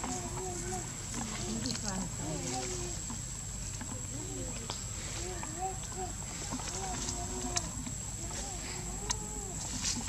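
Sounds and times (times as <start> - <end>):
macaques cooing and squeaking: 0.0 - 3.2, 4.0 - 10.0
steady high-pitched whine: 0.0 - 10.0.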